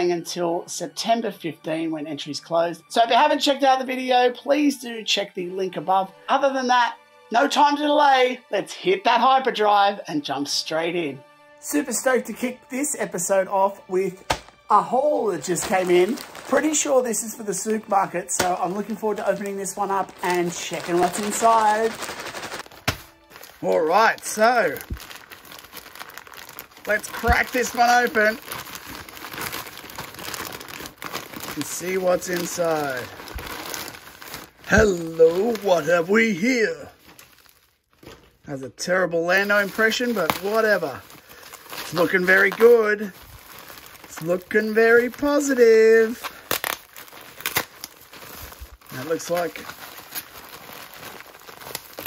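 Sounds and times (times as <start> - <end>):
plastic bag crinkling: 13.6 - 38.4, 39.2 - 52.0
sharp plastic crackles: 14.2 - 36.2, 36.8 - 38.4, 39.4 - 52.0.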